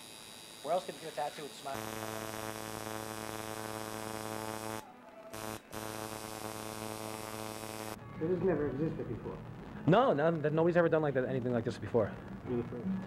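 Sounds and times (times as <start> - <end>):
tattoo machine buzzing: 0.0 - 8.0.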